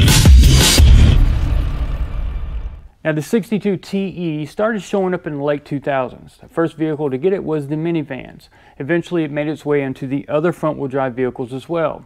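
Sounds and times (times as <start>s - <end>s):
electronic logo sting hit: 0.0s - 2.9s.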